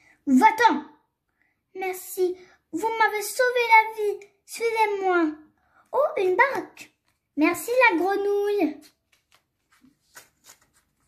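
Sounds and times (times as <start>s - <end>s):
magazine page turning: 6.8s - 11.0s.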